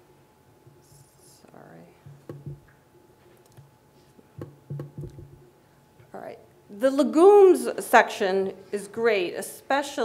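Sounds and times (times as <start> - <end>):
person whispering: 0.8 - 2.0.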